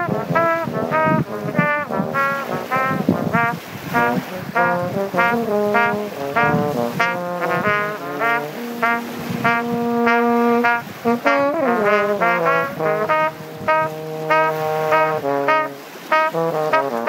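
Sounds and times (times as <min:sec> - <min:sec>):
french horn playing: 0:00.0 - 0:17.0
trumpet playing blues: 0:00.0 - 0:17.0.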